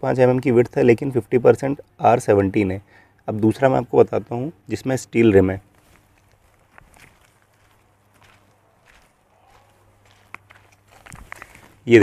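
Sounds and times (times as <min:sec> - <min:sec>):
footsteps on dirt and gravel: 0:05.7 - 0:12.0.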